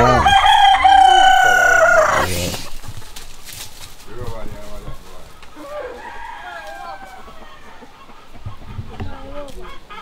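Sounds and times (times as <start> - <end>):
rooster crowing: 0.0 - 2.3, 5.6 - 7.8.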